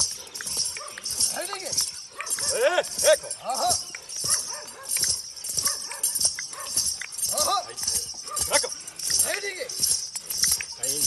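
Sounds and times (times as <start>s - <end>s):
bells jingling: 0.0s - 11.0s
hoof thuds on grass: 0.0s - 11.0s.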